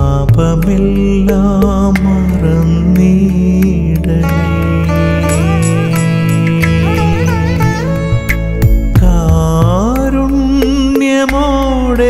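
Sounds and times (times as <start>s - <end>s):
devotional song with drone and beat: 0.0s - 12.0s.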